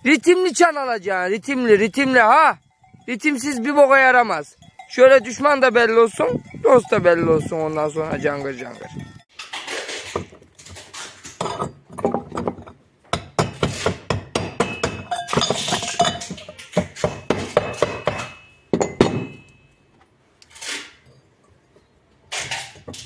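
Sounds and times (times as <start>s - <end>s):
metal goat bell clinking: 0.0s - 9.3s, 14.6s - 19.9s.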